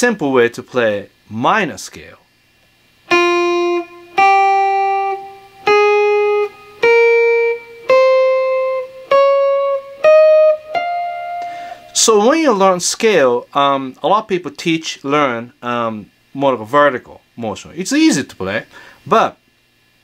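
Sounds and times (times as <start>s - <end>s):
electric guitar single notes: 3.1s - 12.4s.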